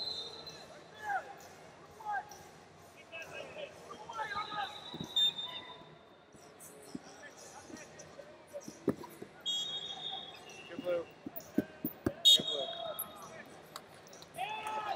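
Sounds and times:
referee whistle blasts: 4.2 - 5.8, 9.4 - 10.4, 12.2 - 13.0.

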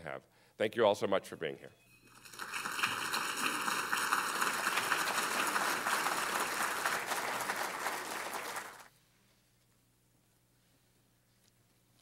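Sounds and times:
audience applauding: 2.1 - 8.9.

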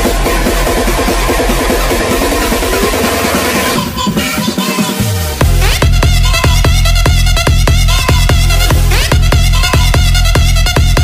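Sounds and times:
electronic dance music: 0.0 - 11.0
heavy pulsing bass: 0.0 - 11.0.

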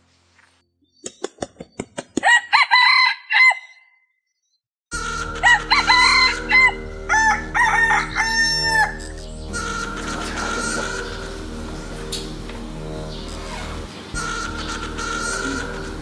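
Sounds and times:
roosters crowing: 2.2 - 3.9, 5.0 - 12.1, 13.2 - 16.0
steady background hum: 5.0 - 16.0.

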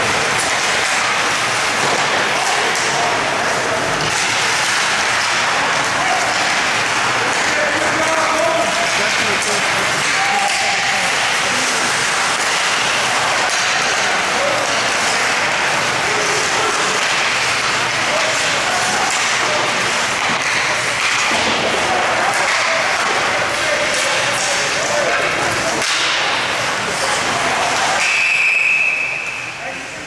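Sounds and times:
ice rink crowd din: 0.0 - 30.0.

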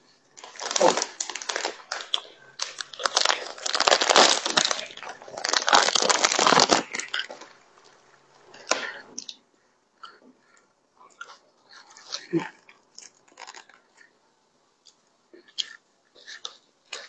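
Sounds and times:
plastic bread wrapper crinkling: 0.4 - 7.6, 13.0 - 13.8.

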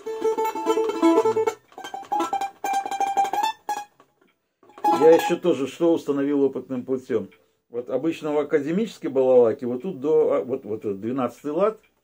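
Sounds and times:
balalaika strummed: 0.0 - 6.2.

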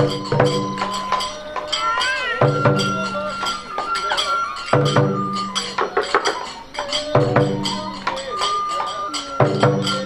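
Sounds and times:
bamboo flute: 0.0 - 10.0
hand cymbals clanging: 0.0 - 10.0
taiko drum stroke ringing: 0.0 - 10.0.

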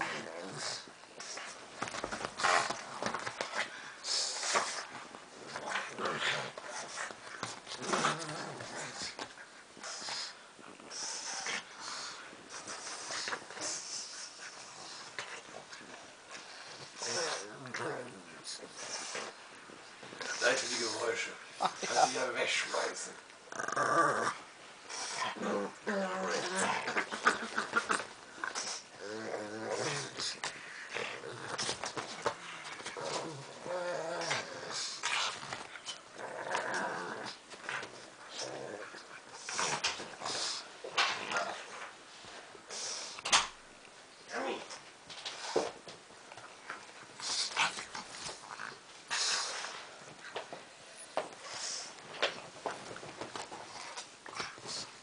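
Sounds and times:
dogs growling: 0.0 - 19.4, 22.8 - 41.9
dogs snorting and grunting: 23.5 - 41.8.

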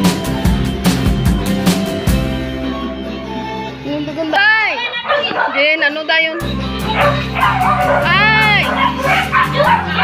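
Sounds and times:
background music: 0.0 - 10.0
dog barking: 4.8 - 10.0.

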